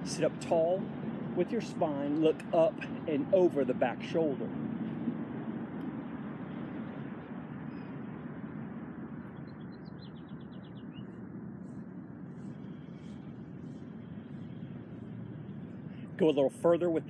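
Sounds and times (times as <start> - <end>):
distant traffic rumble: 0.0 - 17.0
faint high bird chirps: 7.7 - 8.0, 9.2 - 15.1.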